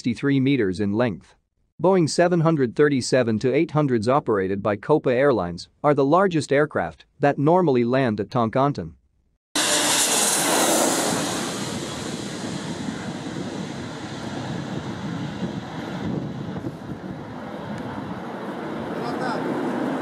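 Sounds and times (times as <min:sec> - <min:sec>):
jet airliner engine noise: 0:09.6 - 0:20.0.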